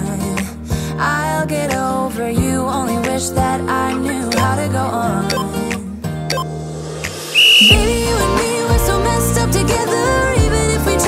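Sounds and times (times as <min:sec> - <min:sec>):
pop music with heavy bass: 0:00.0 - 0:11.0
high signal tone: 0:07.3 - 0:07.9.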